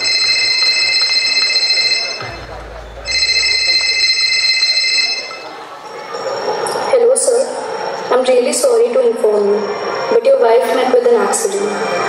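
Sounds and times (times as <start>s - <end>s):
telephone ringtone over speakers: 0.0s - 10.4s.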